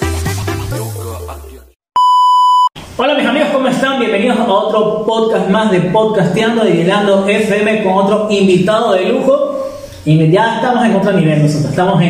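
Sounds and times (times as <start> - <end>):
electronic intro music: 0.0 - 1.8
censor bleep: 2.0 - 2.8.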